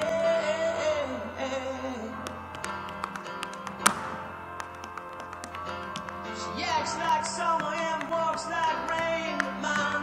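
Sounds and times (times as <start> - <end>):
recorded pop song: 0.0 - 10.0
tap shoes on stage floor: 2.2 - 10.0.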